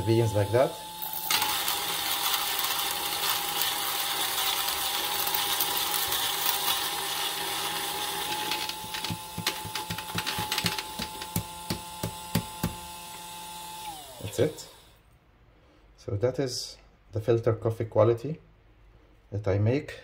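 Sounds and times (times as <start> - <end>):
coffee grinder motor hum: 0.0 - 15.0
beans crunching in grinder: 1.0 - 11.5.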